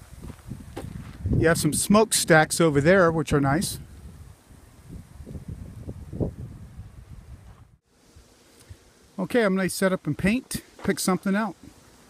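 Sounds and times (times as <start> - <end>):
wind buffeting microphone: 0.0 - 7.8.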